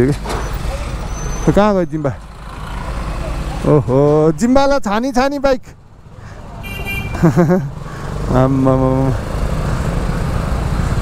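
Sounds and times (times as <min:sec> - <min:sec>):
motorcycle engine rumble: 0:05.7 - 0:11.0.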